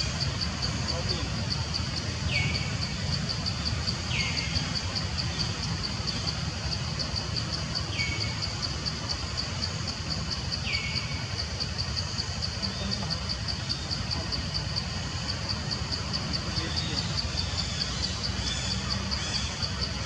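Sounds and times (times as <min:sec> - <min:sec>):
constant low rumble: 0:00.0 - 0:20.0
high-pitched insect chorus: 0:00.0 - 0:20.0.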